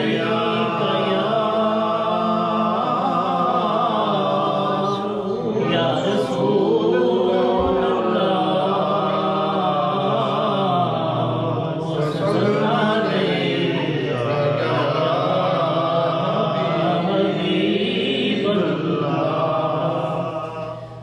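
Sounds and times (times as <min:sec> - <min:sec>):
man singing into a microphone: 0:00.0 - 0:21.0.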